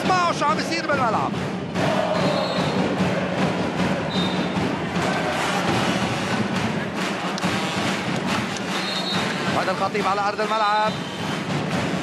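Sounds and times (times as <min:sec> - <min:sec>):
crowd noise: 0:00.0 - 0:12.0
drumbeats: 0:00.0 - 0:12.0.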